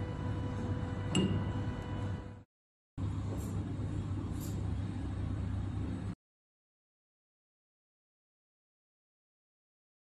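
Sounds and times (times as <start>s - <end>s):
low hum with rumble: 0.0s - 6.2s.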